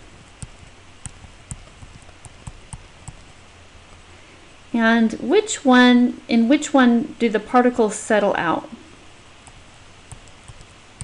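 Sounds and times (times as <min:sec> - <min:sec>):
stylus tapping on tablet screen: 0:00.0 - 0:04.0, 0:09.5 - 0:11.0
low steady hum: 0:00.0 - 0:11.0.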